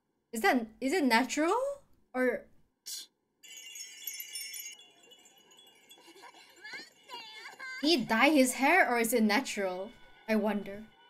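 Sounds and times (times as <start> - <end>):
wind chime ringing: 3.4 - 8.5.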